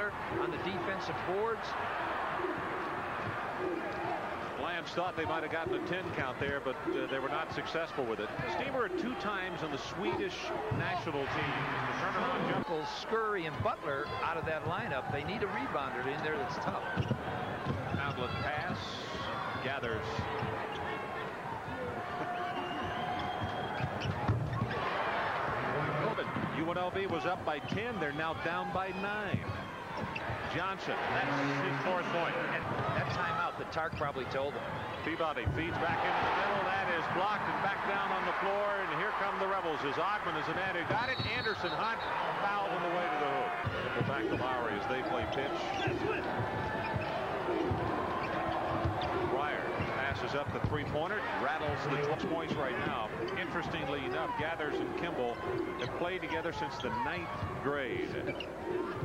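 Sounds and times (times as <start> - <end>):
arena crowd noise: 0.0 - 59.0
shoe squeaks: 22.3 - 24.8, 41.0 - 42.3, 58.2 - 59.0.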